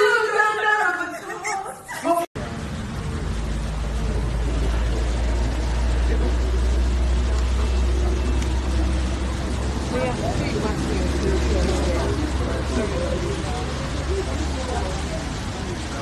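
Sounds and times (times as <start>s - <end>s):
indistinct voices: 0.0s - 16.0s
steady low rumble: 2.4s - 16.0s.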